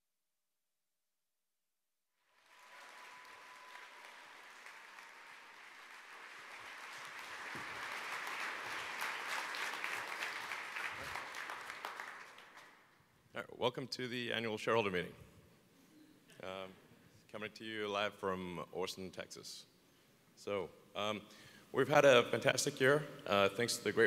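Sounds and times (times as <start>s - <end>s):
audience applauding: 2.3s - 12.9s.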